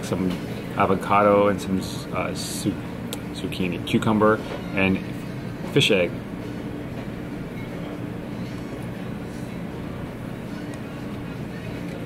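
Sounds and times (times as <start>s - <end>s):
restaurant background hum: 0.0s - 12.0s.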